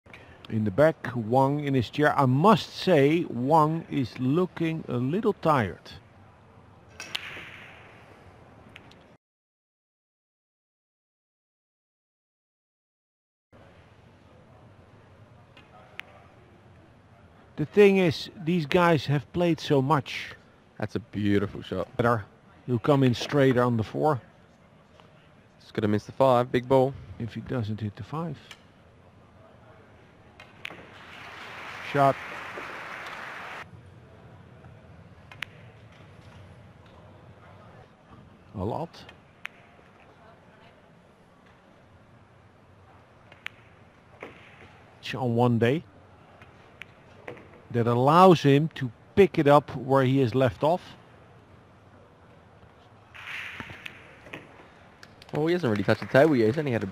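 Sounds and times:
audience applause: 31.0s - 33.6s, 55.4s - 56.9s.

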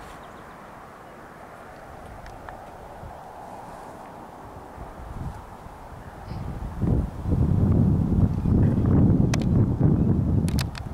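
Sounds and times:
wind buffeting microphone: 0.0s - 10.9s.

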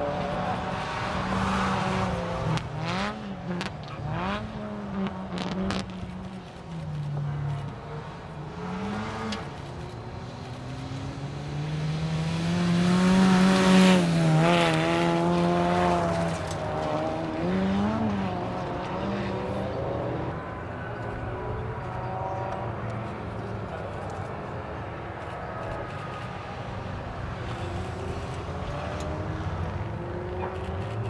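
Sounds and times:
rally car engine revving: 0.0s - 20.6s.

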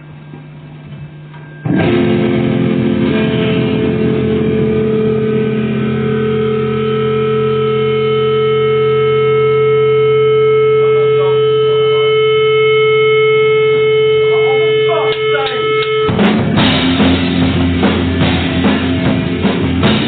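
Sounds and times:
amplifier hum: 0.0s - 20.0s
distorted electric guitar chord: 1.4s - 20.0s.

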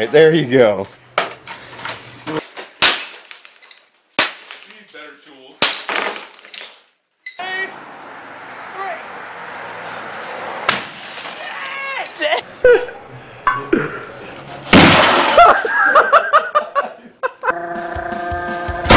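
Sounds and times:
television tube smashing: 1.2s - 4.8s, 10.7s - 11.7s, 14.7s - 15.7s
glass breaking and ringing: 1.9s - 7.4s, 10.7s - 11.9s.

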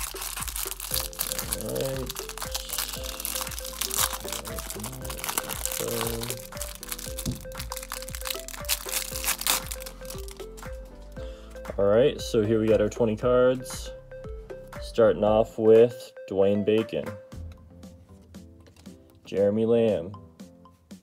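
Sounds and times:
plastic wrapper crinkling: 0.0s - 10.7s
background music: 0.0s - 21.0s.

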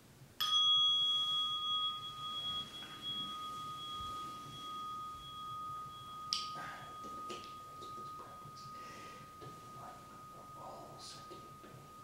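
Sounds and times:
meditation bell ringing: 0.4s - 12.0s.

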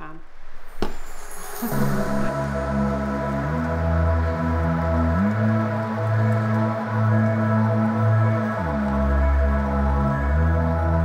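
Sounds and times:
ambient music chords: 0.0s - 11.0s.

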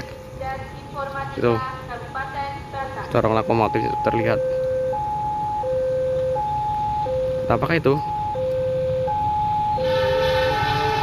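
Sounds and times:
level crossing two-tone alarm: 0.0s - 11.0s.

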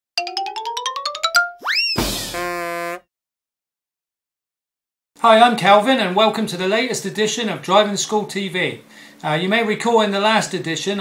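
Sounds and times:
rising whistle swoop: 1.6s - 2.2s.

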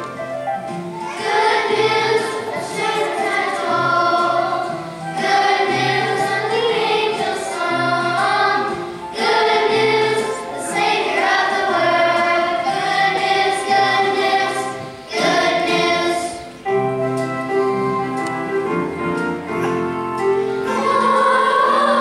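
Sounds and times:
children's choir singing: 0.6s - 17.9s, 18.7s - 22.0s.

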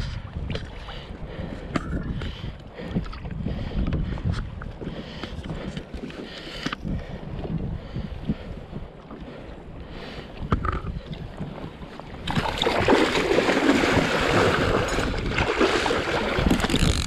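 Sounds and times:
wind on microphone: 0.0s - 6.0s, 6.6s - 17.0s
water sloshing against a kayak: 0.0s - 17.0s
fish splashing at the surface: 12.3s - 16.7s.

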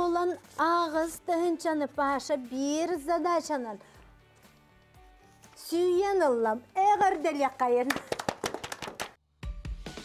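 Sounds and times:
people clapping: 7.8s - 9.2s
upbeat music with thumping beat: 7.8s - 10.0s.

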